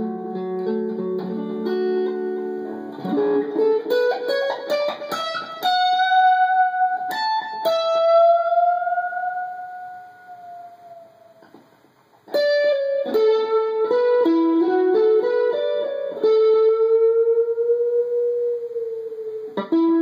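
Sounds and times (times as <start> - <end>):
electric guitar lead: 0.0 - 20.0.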